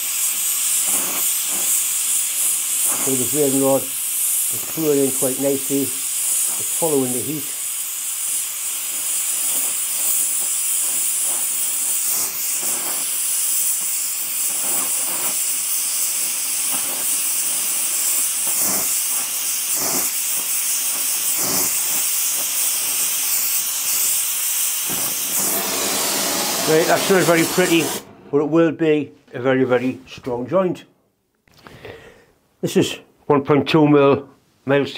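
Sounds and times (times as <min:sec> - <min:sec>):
torch flame hissing: 0:00.0 - 0:28.4.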